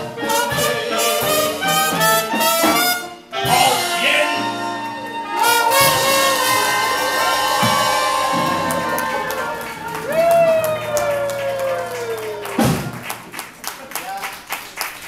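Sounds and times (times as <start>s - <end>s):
jazz band playing: 0.0s - 13.6s
audience applause and cheering: 4.8s - 15.0s.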